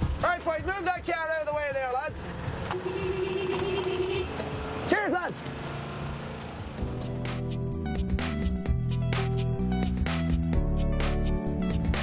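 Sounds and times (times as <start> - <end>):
van engine: 0.0 - 12.0.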